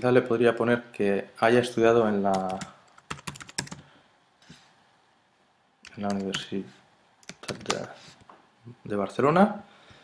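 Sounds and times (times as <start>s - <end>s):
computer keyboard typing: 2.3s - 3.8s, 5.8s - 6.5s, 7.2s - 7.9s.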